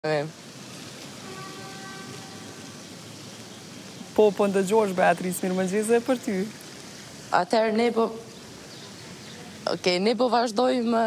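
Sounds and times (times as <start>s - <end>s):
street ambience hiss: 0.0s - 11.0s.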